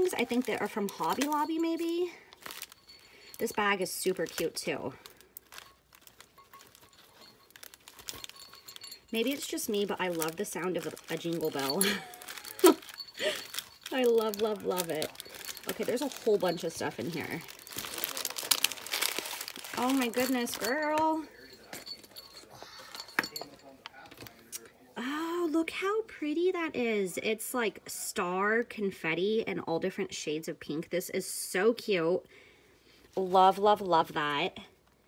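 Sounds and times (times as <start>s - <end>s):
paper shred crinkling: 0.0s - 21.1s
fabric bag rustling: 0.0s - 24.4s
light clinks: 0.0s - 24.7s.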